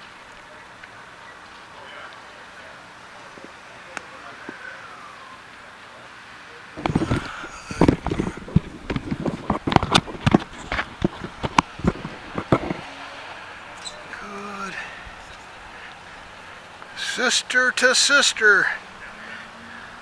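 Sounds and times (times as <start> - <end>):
phone handling knocks and rubbing: 6.8 - 12.8.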